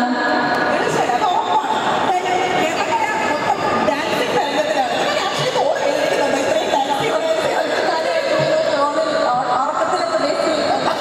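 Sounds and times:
crowd noise: 0:00.0 - 0:11.0
speech over public address: 0:00.0 - 0:11.0.

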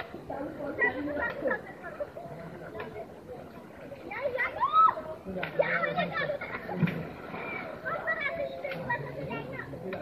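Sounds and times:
children playing and chattering: 0:00.0 - 0:10.0.

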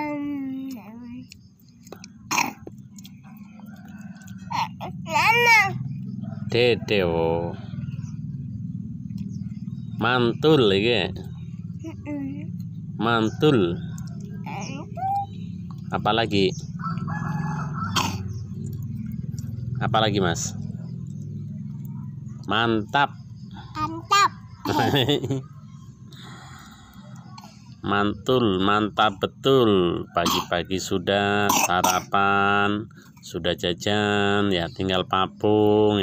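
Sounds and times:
low background hum: 0:00.0 - 0:36.0
throaty burp or grunt: 0:02.3 - 0:02.7, 0:31.4 - 0:32.1
rooster crowing: 0:03.6 - 0:04.8, 0:06.2 - 0:08.1, 0:13.0 - 0:14.3, 0:16.8 - 0:18.5.

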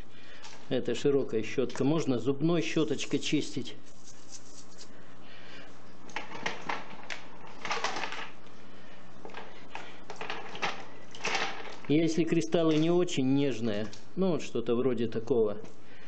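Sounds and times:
brush scrubbing stone: 0:03.8 - 0:04.9.

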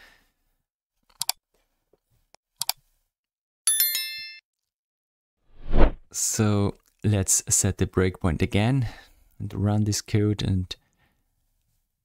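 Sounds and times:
electronic bell chime: 0:03.7 - 0:04.4.

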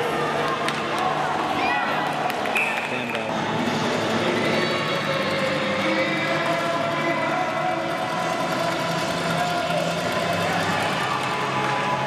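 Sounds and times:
crowd chatter: 0:00.0 - 0:12.0
background music: 0:02.6 - 0:12.0.

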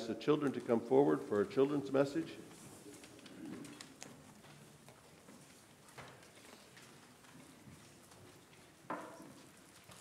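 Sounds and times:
children's footsteps and shuffling: 0:00.1 - 0:10.0.

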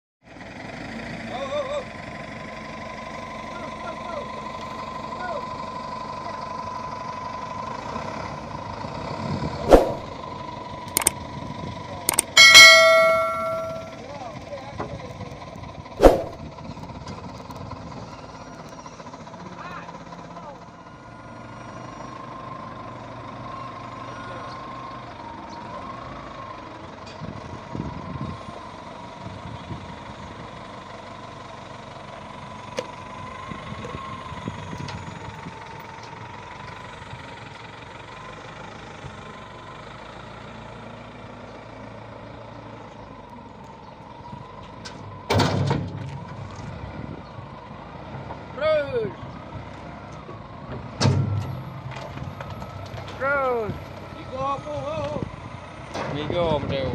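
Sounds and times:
diesel engine whining under load: 0:00.3 - 0:56.9.

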